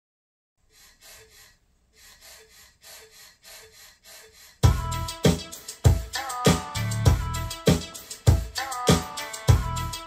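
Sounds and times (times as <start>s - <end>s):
breathy panting in pop song: 0.6s - 9.6s.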